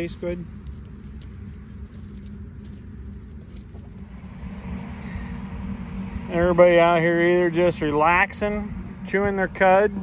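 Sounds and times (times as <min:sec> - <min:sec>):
tractor engine idling: 0:00.0 - 0:10.0.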